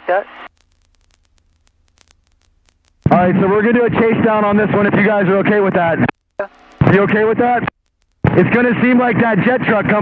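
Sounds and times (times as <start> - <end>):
faint electrical hum: 0.0 - 10.0
soft static clicks: 0.0 - 10.0.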